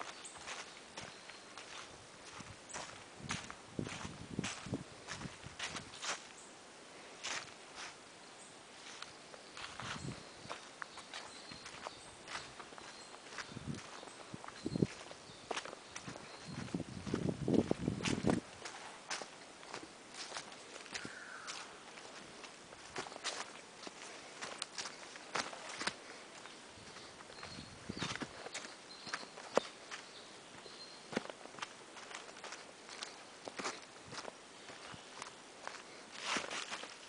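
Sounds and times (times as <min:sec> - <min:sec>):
footsteps crunching on leaves: 0:00.0 - 0:06.4, 0:07.2 - 0:08.0, 0:08.7 - 0:37.0
leaves rustling: 0:00.0 - 0:37.0.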